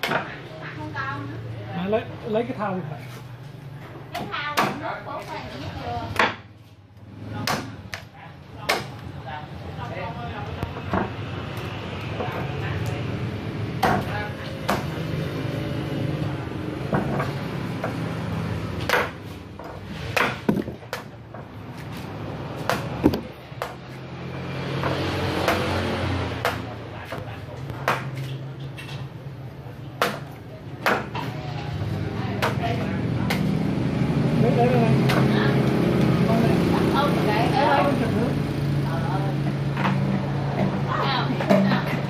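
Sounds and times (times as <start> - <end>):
machete chopping coconut husk: 7.3 - 9.0, 13.7 - 15.1, 18.7 - 21.2, 21.8 - 23.8, 24.7 - 28.3, 30.0 - 31.3, 34.9 - 35.4.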